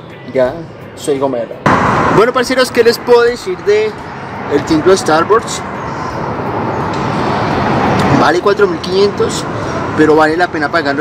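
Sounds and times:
vehicle passing road noise: 1.6s - 11.0s.

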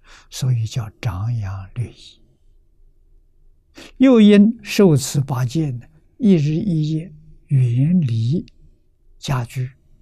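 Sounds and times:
man lecturing: 3.8s - 8.5s, 9.2s - 9.8s.

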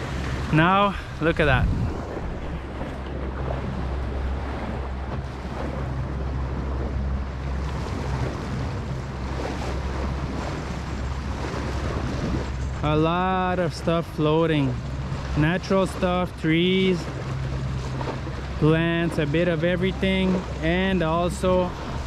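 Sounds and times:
boat engine humming: 0.0s - 22.0s
water washing past hull: 0.0s - 22.0s
wind buffeting microphone: 0.0s - 22.0s.

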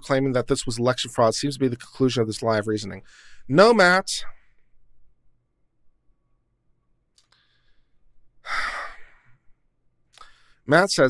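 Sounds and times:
faint click: 7.1s - 7.5s, 10.1s - 10.4s
man sighing: 8.4s - 9.5s.

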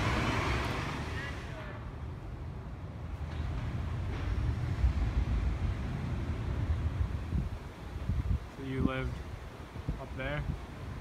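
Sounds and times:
city background rumble: 0.0s - 11.0s.

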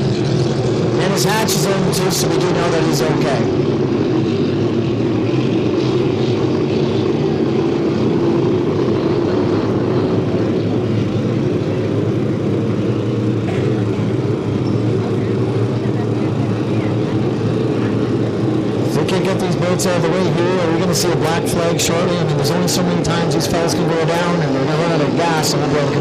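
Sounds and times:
racing boat engines droning: 0.0s - 26.0s.

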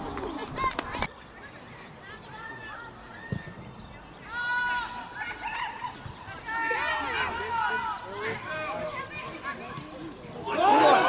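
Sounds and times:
footballers shouting: 4.2s - 11.0s.

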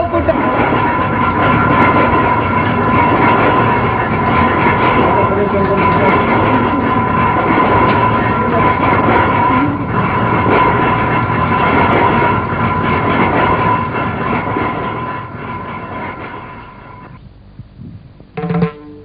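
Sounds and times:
vehicle rumbling and rattling: 0.0s - 18.9s
sustained high tone: 18.4s - 19.0s.

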